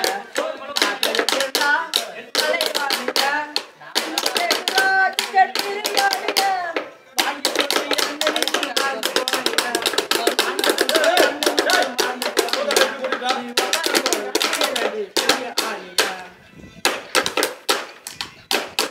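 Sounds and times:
young man singing: 0.0s - 17.4s
sticks tapping on bamboo: 0.8s - 16.2s, 16.8s - 18.9s.

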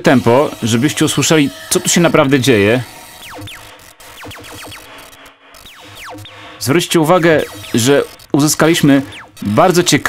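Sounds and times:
electronic zaps falling in pitch: 0.0s - 10.0s
low pulsing hum: 1.5s - 9.6s.

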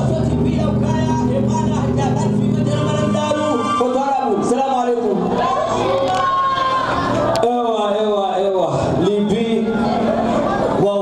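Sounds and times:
band holding a chord: 0.0s - 7.6s.

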